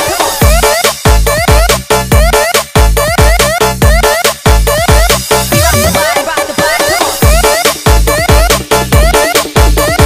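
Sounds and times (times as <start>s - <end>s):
electronic dance music: 0.0s - 10.0s
heavy kick and bass: 0.0s - 10.0s.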